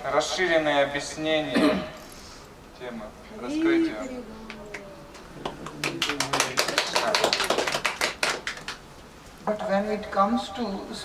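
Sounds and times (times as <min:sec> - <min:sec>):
people clapping: 0:04.4 - 0:08.9.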